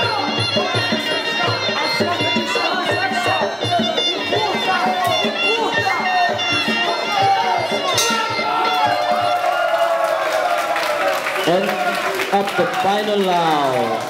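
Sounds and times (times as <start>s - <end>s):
reedy oboe melody: 0.0s - 10.2s
crowd noise and shouting: 0.0s - 14.0s.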